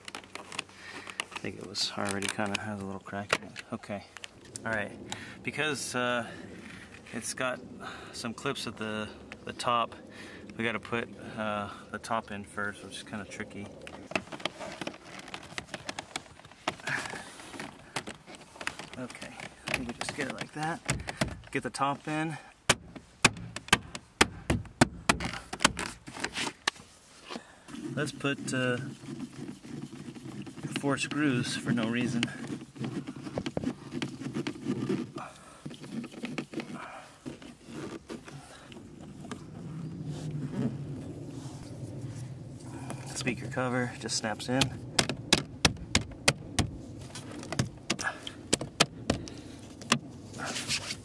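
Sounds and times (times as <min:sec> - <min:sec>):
plastic scraping: 0:00.0 - 0:05.2, 0:13.0 - 0:21.9, 0:22.8 - 0:41.7, 0:42.8 - 0:51.0.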